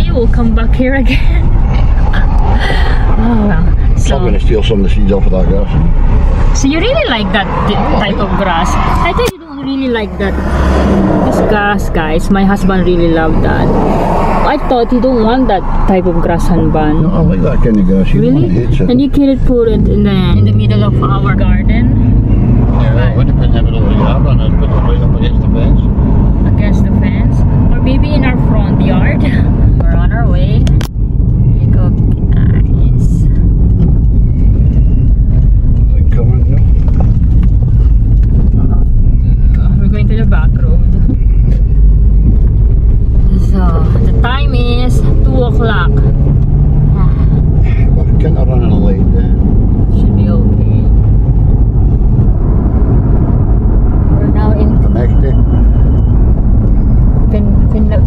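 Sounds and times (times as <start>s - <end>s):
voices talking: 0.0s - 30.7s, 35.8s - 37.1s, 43.2s - 46.2s, 46.9s - 51.0s, 54.1s - 55.8s, 57.2s - 58.0s
car engine and tyres rumbling: 0.0s - 58.0s.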